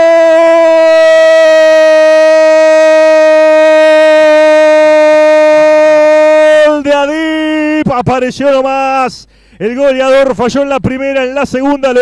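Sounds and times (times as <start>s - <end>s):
commentator shouting goal cry: 0.0s - 9.1s.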